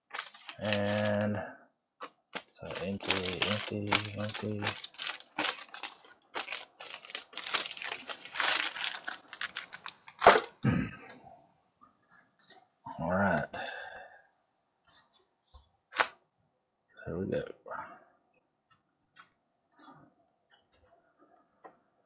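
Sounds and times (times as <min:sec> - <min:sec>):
wrapper tearing and crinkling: 0:00.0 - 0:01.3, 0:02.0 - 0:10.6.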